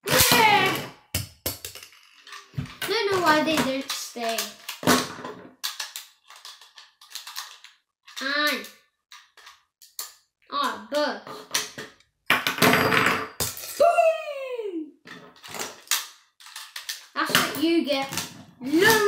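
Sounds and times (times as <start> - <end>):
child vocal sounds: 0.0 - 0.9, 18.6 - 19.0
small plastic clicks: 3.8 - 4.8, 5.5 - 10.3, 15.4 - 17.2.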